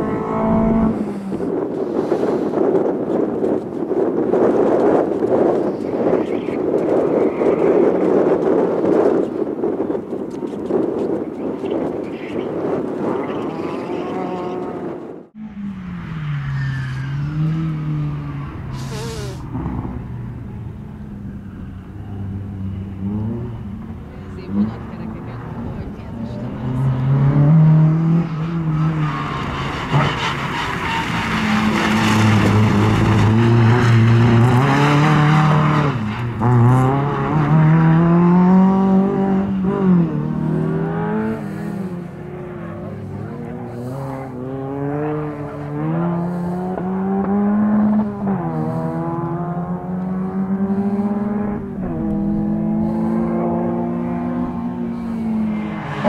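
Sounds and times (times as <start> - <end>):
rally car engine revving: 0.0 - 1.6, 22.0 - 56.0
tyres squealing and skidding: 16.2 - 19.6, 28.3 - 34.1.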